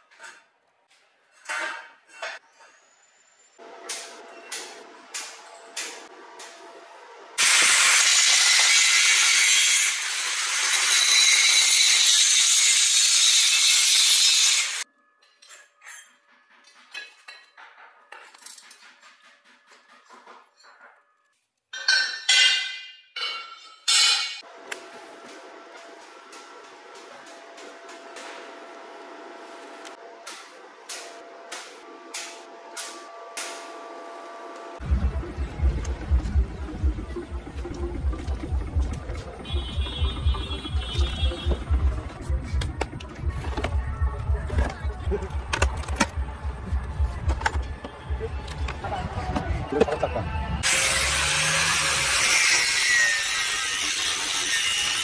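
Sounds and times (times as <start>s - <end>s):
power tool cutting steel: 7.4s - 14.8s, 50.6s - 55.0s.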